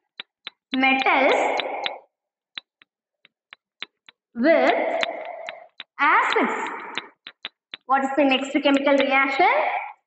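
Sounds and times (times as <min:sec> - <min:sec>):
chalk clicking on blackboard: 0:00.0 - 0:02.0, 0:02.6 - 0:09.1.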